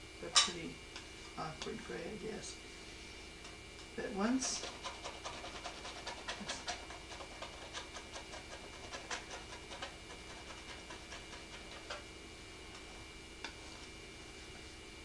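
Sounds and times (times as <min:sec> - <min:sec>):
steady electrical hum: 0:00.0 - 0:15.0.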